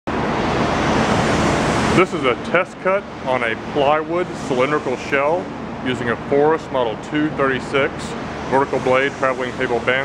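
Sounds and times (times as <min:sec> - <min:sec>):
loud rushing noise: 0:00.1 - 0:06.6.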